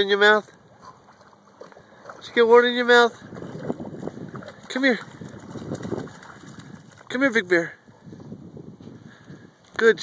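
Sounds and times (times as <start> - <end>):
dog splashing through water: 0.8 - 7.4.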